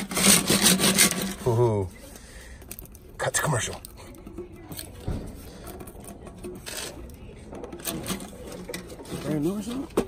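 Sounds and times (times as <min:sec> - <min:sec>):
metal rasp: 0:00.0 - 0:01.7.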